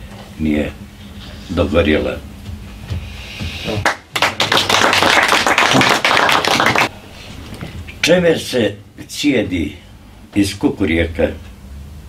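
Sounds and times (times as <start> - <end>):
audience applause: 3.8 - 6.9.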